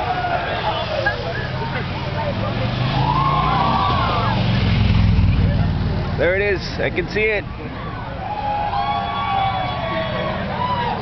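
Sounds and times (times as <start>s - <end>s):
crowd voices: 0.0s - 11.0s
vehicle engine rumble: 0.0s - 11.0s.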